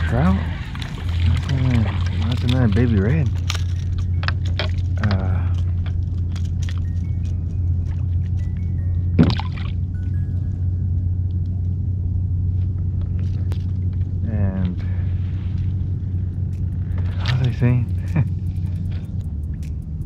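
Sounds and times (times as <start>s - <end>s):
rising wavering pitched sound: 0.0s - 20.0s
steady low rumble: 0.0s - 20.0s.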